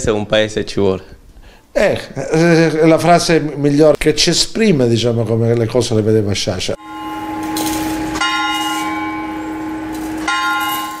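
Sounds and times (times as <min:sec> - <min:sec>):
church bell tolling: 0:06.8 - 0:11.0.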